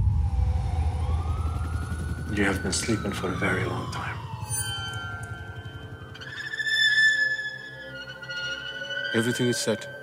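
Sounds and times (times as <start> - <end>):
deep steady rumble: 0.0 - 6.2
distant siren wailing: 0.0 - 10.0.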